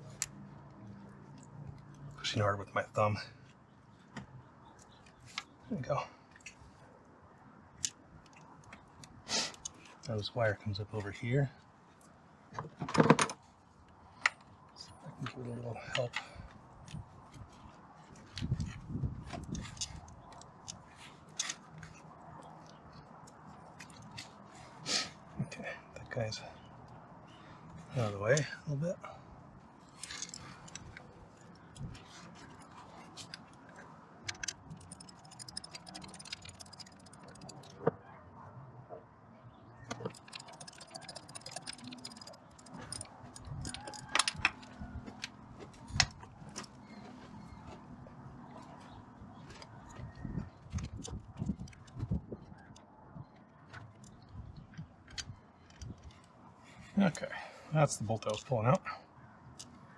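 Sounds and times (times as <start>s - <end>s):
ratchet clicking: 34.3s - 37.7s, 39.9s - 44.3s.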